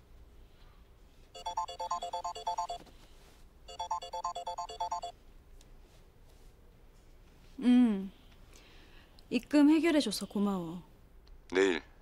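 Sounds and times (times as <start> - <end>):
mobile phone ringtone: 1.4 - 2.8, 3.7 - 5.1.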